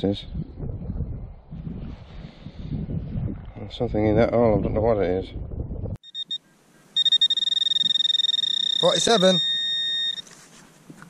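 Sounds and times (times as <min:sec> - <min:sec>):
high-pitched alarm tone: 0:06.0 - 0:06.4, 0:07.0 - 0:10.2
short high beeps: 0:06.0 - 0:06.4, 0:07.0 - 0:10.3.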